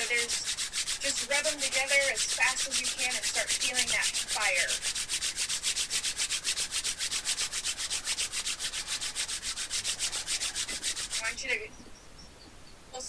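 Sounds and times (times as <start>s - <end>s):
palms rubbing together: 0.0s - 11.7s.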